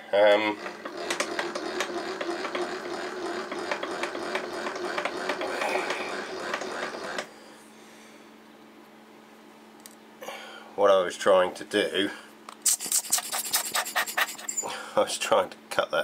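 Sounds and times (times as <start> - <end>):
milling machine spindle clattering: 0.3 - 7.3
faint hum: 7.2 - 16.0.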